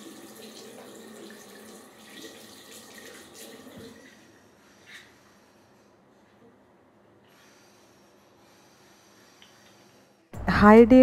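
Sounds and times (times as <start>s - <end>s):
tap water running into basin: 0.0s - 4.2s.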